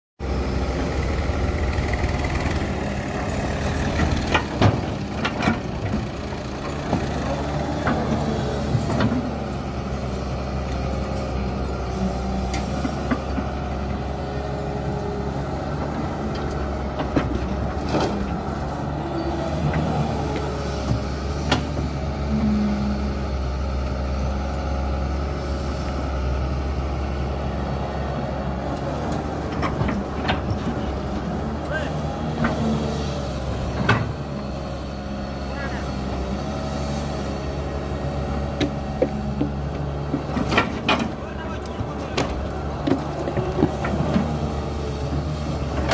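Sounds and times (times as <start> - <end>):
excavator diesel engine running: 0.2 - 45.9.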